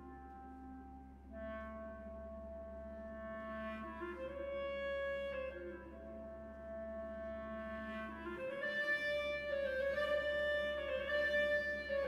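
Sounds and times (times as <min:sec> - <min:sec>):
clarinet holding long note: 0:00.0 - 0:12.0.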